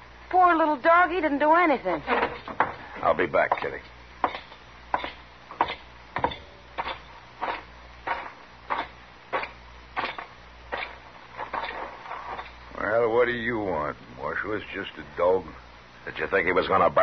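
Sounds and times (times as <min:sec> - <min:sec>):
footsteps walking: 0:06.8 - 0:12.6.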